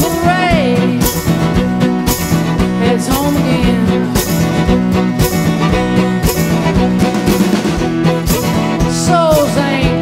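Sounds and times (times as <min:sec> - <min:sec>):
person singing: 0:00.0 - 0:01.4, 0:02.7 - 0:04.6, 0:08.3 - 0:10.0
acoustic guitar strumming: 0:00.0 - 0:10.0.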